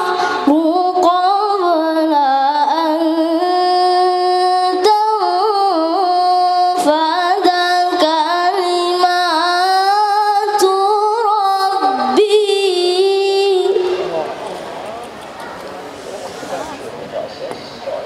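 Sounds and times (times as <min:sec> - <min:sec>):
boy chanting through loudspeaker: 0:00.0 - 0:14.8
hall noise: 0:11.7 - 0:18.0.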